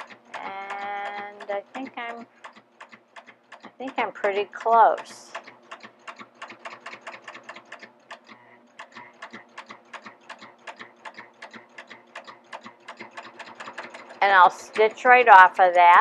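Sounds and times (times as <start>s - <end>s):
faint motor hum: 0.0s - 16.0s
serger stitching ticking: 0.0s - 16.0s.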